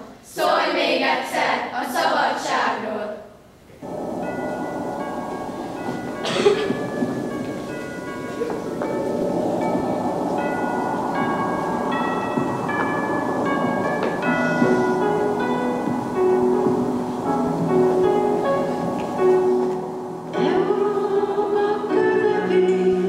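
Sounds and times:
rumble of movement on stage floor: 3.7s - 19.9s
piano melody: 3.7s - 23.0s.

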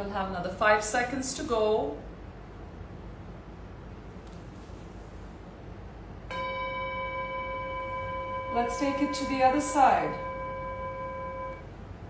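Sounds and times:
timer bell chime ringing: 6.3s - 11.6s.

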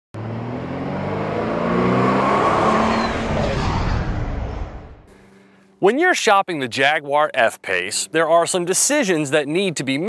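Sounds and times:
car driving past: 0.2s - 5.2s.

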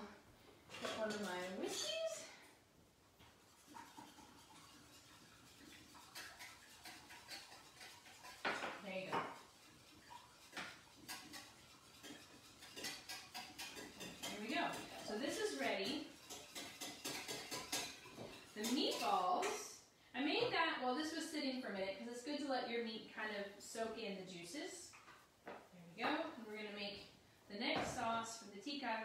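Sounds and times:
utensils knocking on dishes: 6.0s - 19.6s.

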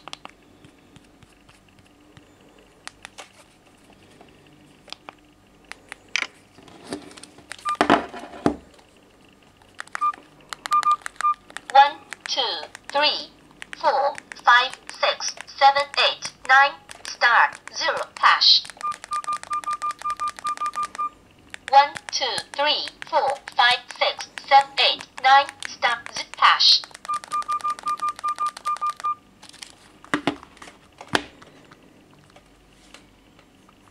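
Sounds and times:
short keypad beeps: 7.6s - 7.9s, 10.0s - 11.4s, 18.8s - 21.2s, 27.1s - 29.2s
talking keypad voice: 11.7s - 18.7s, 21.7s - 26.9s.

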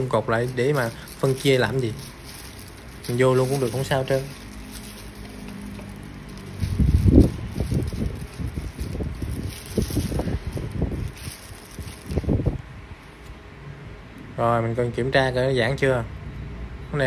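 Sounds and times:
rumbles and bumps on microphone: 0.5s - 12.6s.

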